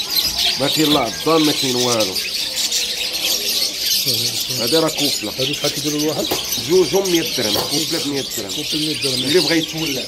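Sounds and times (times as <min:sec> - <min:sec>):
caged birds chirping: 0:00.0 - 0:10.0.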